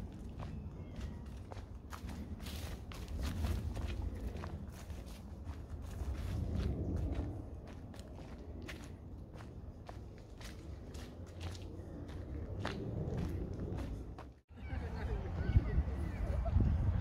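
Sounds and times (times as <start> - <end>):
footsteps on dirt path: 0.0 - 14.4
low rumble: 1.3 - 14.4.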